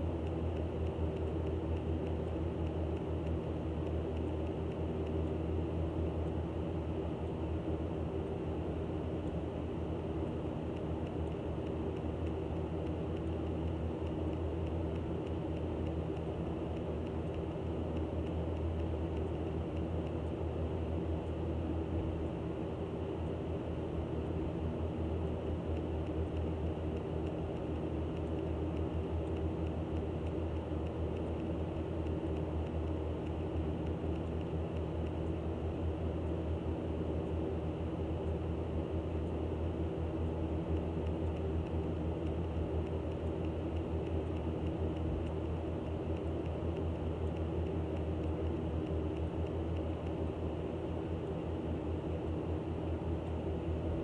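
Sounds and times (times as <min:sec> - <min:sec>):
low mechanical hum: 0:00.0 - 0:54.0.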